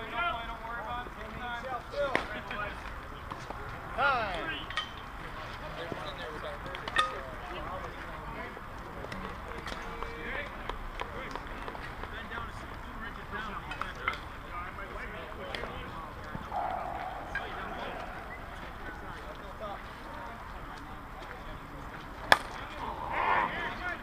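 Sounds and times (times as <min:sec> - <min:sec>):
indistinct voices talking: 0:16.3 - 0:20.7.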